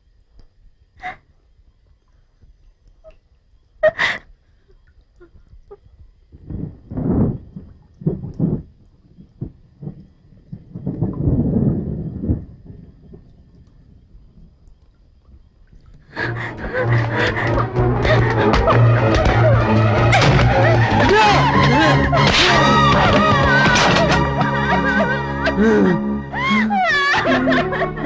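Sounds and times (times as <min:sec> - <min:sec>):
person breathing and gasping: 0:16.1 - 0:19.0, 0:25.4 - 0:26.7.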